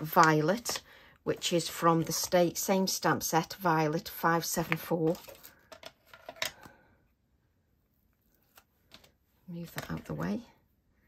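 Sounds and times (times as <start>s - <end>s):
craft supplies tapping and rustling: 4.7s - 6.8s.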